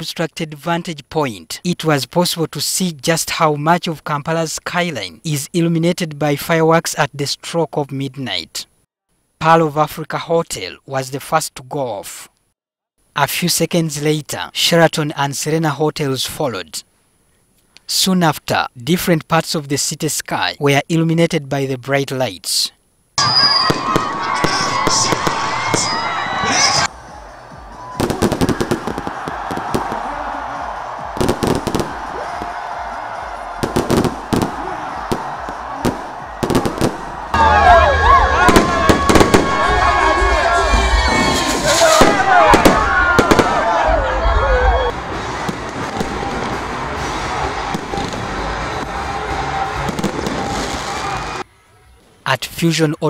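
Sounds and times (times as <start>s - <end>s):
fireworks bangs and crackles: 23.2s - 26.9s, 27.9s - 32.8s, 33.4s - 37.4s, 38.4s - 40.1s, 40.8s - 51.4s
people shouting: 23.2s - 45.0s, 45.8s - 51.4s.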